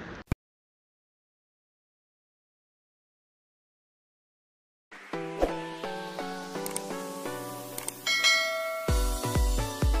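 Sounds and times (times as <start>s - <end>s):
bell-like chime: 8.0s - 9.3s
music with heavy bass beat: 8.8s - 10.0s.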